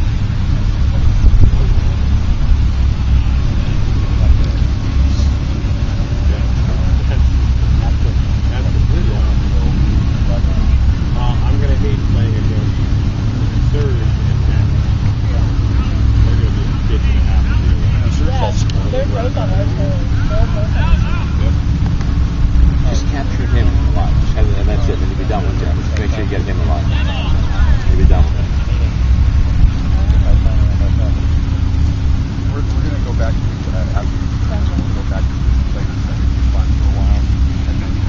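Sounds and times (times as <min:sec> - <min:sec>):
distant indistinct voices: 0:00.0 - 0:38.0
steady low rumble: 0:00.0 - 0:38.0.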